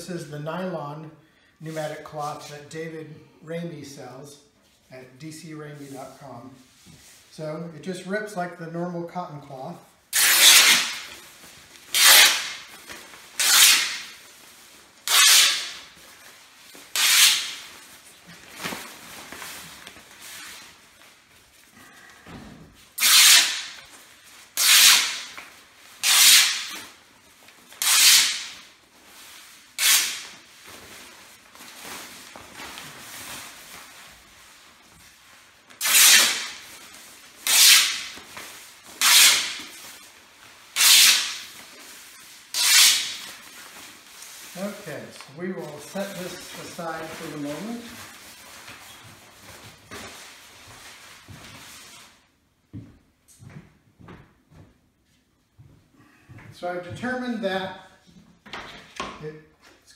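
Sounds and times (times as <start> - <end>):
cloth ripping: 10.1 - 11.2, 11.8 - 14.3, 15.0 - 16.0, 16.7 - 20.5, 23.0 - 23.9, 24.6 - 25.4, 26.0 - 27.0, 27.8 - 28.7, 29.7 - 30.5, 35.7 - 36.8, 37.4 - 40.0, 40.8 - 41.7, 42.5 - 43.5
fabric sheet rustling: 10.4 - 23.0, 28.6 - 52.5.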